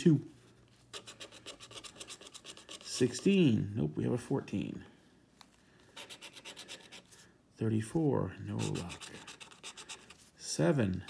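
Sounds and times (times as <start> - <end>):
scratcher scraping lottery ticket: 8.5 - 10.2.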